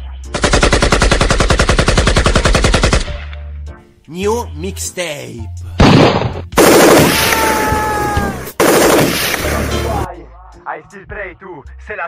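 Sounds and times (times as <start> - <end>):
machine-gun burst sound effect: 6.6 - 7.3, 8.6 - 9.6.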